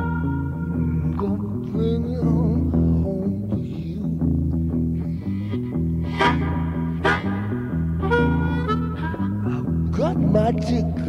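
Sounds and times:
blues harmonica: 0:00.0 - 0:03.8, 0:04.8 - 0:11.0
bass line and guitar: 0:00.0 - 0:11.0.

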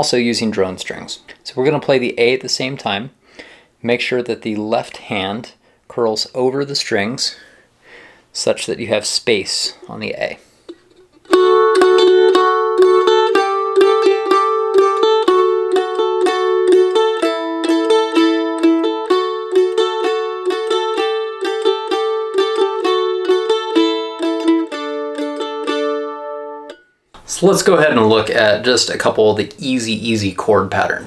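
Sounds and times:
mandolin picked with drone: 0:10.7 - 0:27.0.

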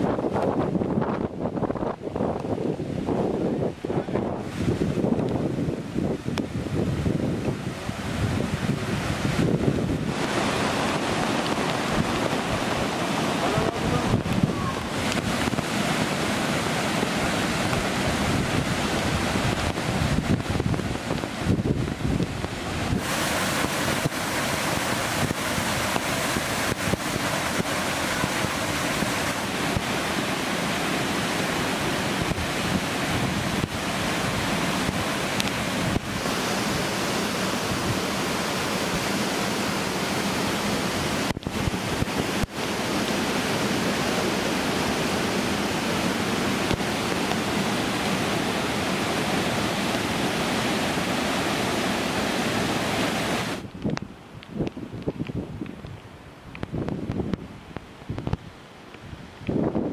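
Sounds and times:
floodwater rushing over boulders: 0:00.0 - 0:59.9.

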